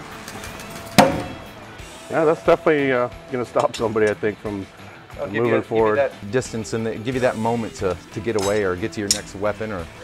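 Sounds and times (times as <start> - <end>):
knife thunking into wood: 1.0 - 1.4.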